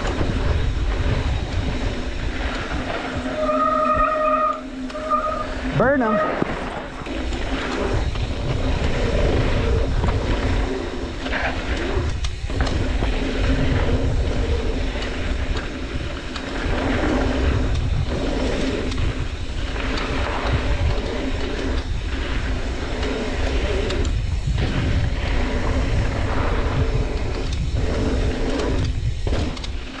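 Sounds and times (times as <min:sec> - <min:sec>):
tyre rumble over dirt: 0:00.0 - 0:04.5, 0:05.5 - 0:30.0
bike rattling over bumps: 0:00.0 - 0:30.0
wind rush on microphone: 0:00.0 - 0:30.0.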